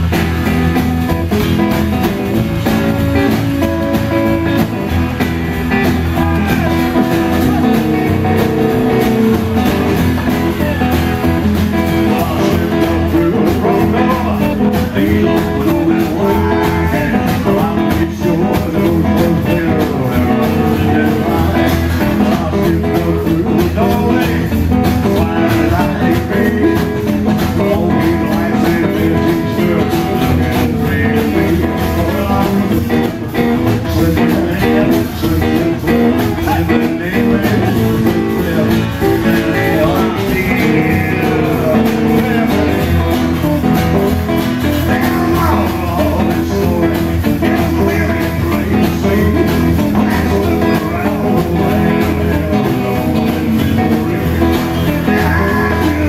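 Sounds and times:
acoustic guitar: 0:00.0 - 0:56.0
drums: 0:00.0 - 0:56.0
electric guitar: 0:00.0 - 0:56.0
upright double bass: 0:00.0 - 0:56.0.

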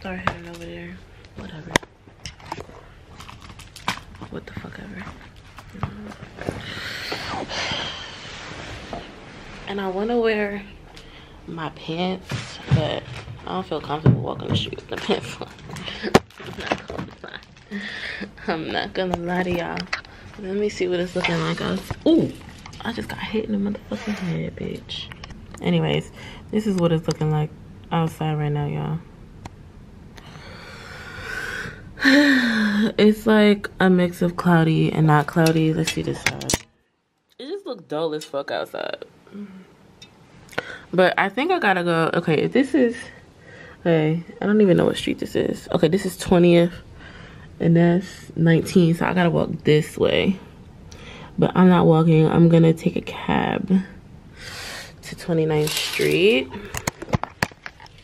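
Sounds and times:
breath close to microphone: 0:06.5 - 0:08.6, 0:30.2 - 0:32.9, 0:54.3 - 0:55.0
person speaking: 0:55.1 - 0:56.8.

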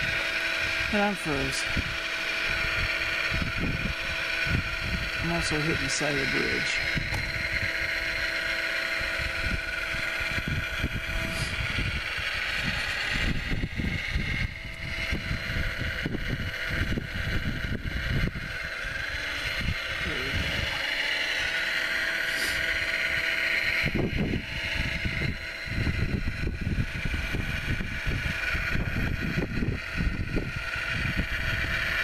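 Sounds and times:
electric motors whining: 0:00.0 - 0:32.0
wind buffeting microphone: 0:00.0 - 0:32.0.

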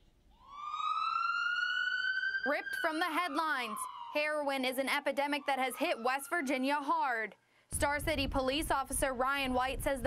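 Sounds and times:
siren wailing: 0:00.3 - 0:07.3.

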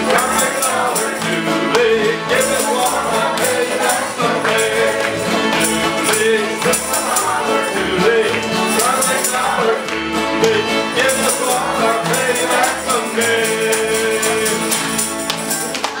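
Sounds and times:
fiddles playing melody: 0:00.0 - 0:15.8
strummed guitars: 0:00.0 - 0:16.0
upright bass: 0:00.0 - 0:16.0.

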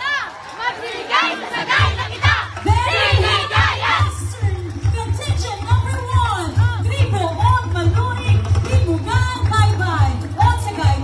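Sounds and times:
loud festival music: 0:01.5 - 0:11.0
heavy steady drum beat: 0:01.7 - 0:11.0.

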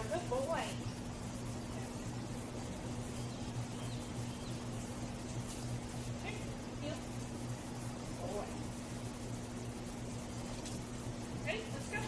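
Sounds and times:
background hiss: 0:00.0 - 0:12.0
steady low hum: 0:00.0 - 0:12.0.

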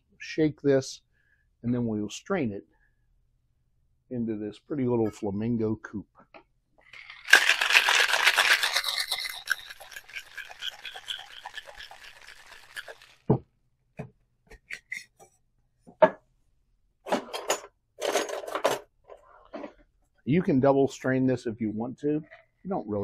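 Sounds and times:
ice rattling in cocktail shaker: 0:06.8 - 0:13.3.

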